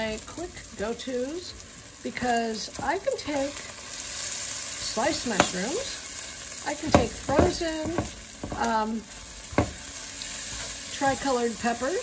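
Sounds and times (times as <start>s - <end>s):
food sizzling in a frying pan: 0.0s - 12.0s.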